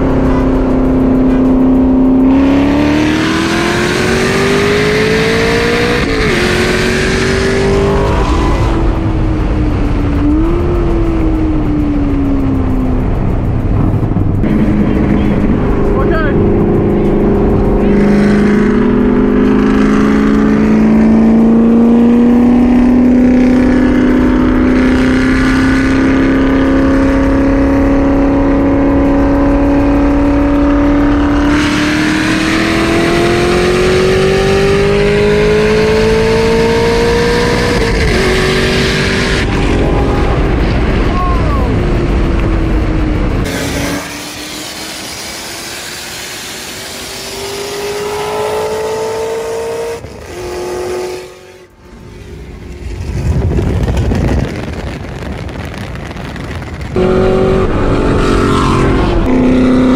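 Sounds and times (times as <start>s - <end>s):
sports car engines at full throttle: 0.0s - 59.9s.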